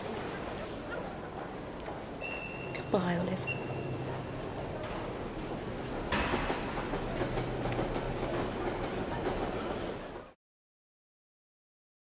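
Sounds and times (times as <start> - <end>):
train rumbling on rails: 0.0 - 10.4.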